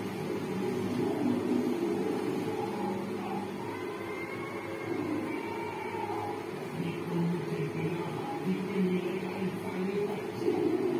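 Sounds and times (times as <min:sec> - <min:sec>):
low-pitched background hum: 0:00.0 - 0:10.9.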